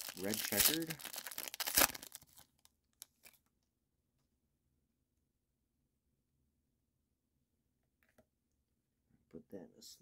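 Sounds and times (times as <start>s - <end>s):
foil wrapper crinkling: 0.0s - 3.5s.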